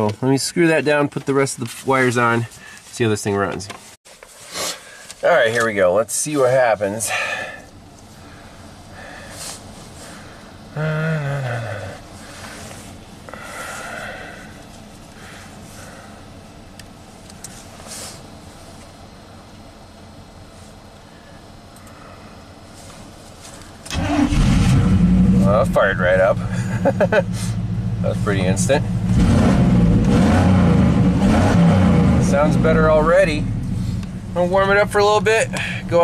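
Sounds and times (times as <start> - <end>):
pickup engine cranking and starting: 23.8 - 36.0.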